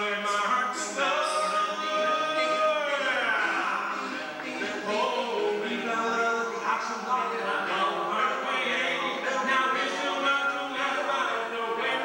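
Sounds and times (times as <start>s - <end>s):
men singing a cappella harmony: 0.0s - 12.0s.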